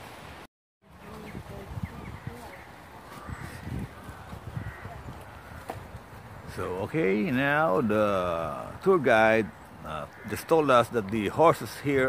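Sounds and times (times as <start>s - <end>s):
footsteps on soft ground: 0.8s - 8.4s.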